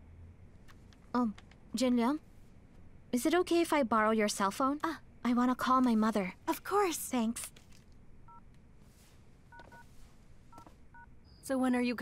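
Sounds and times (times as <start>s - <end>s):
phone keypad beeps: 9.5s - 9.9s.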